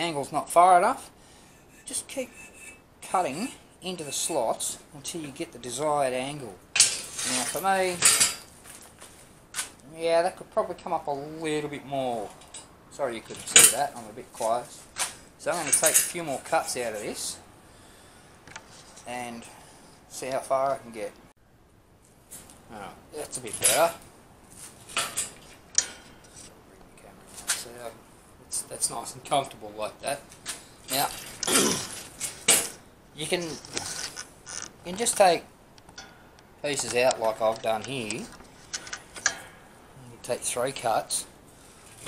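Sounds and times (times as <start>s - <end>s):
steel angle iron clanking: 6.8s - 8.5s, 15.6s - 16.4s, 24.9s - 26.5s, 36.0s - 39.8s.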